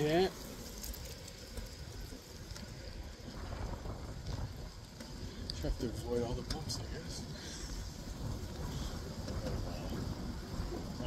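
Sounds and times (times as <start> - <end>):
road noise: 0.0 - 11.0
wind buffeting microphone: 0.0 - 11.0.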